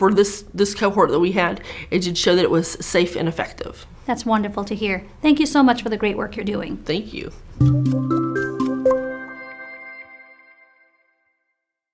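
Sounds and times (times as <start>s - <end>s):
ringing music sting notes: 7.6s - 11.2s.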